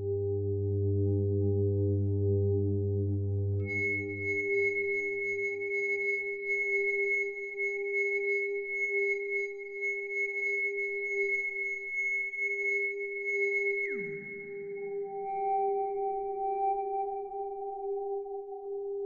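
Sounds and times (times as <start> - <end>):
synthesizer sine tones: 0.0 - 4.8.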